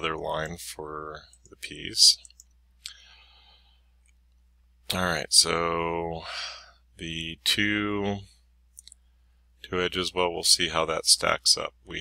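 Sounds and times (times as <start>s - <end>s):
faint breath: 2.8s - 4.0s, 6.2s - 6.8s.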